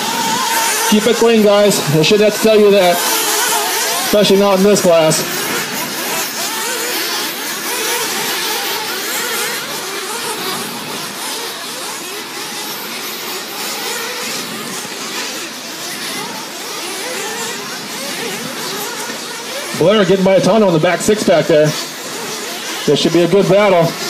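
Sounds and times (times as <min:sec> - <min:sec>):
rc car engines whining: 0:00.0 - 0:24.0.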